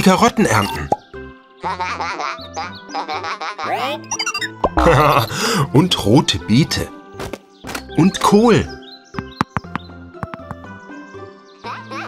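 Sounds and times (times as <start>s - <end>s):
bouncy background music: 0.0s - 12.0s
cartoon robot squawky chatter: 3.5s - 5.0s.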